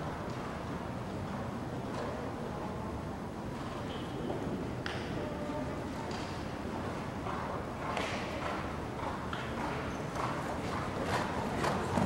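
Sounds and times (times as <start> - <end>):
horse hoofbeats cantering: 7.2 - 12.0.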